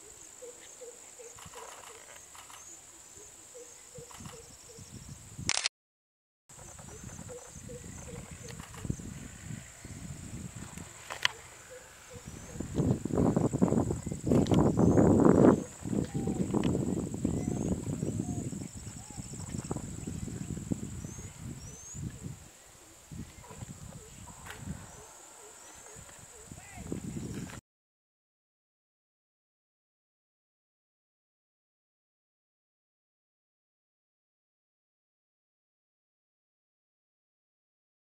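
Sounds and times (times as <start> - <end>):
insect drone: 0.0 - 5.5, 6.5 - 27.5.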